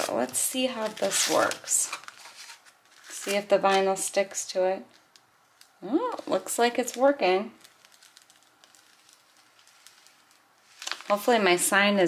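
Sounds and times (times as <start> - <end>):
plastic sheet rustling: 0.0 - 3.9, 5.1 - 12.0.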